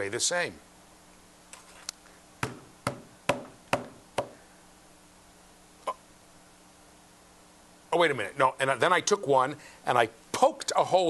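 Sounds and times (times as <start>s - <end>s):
sharp knocks: 2.4s - 4.4s.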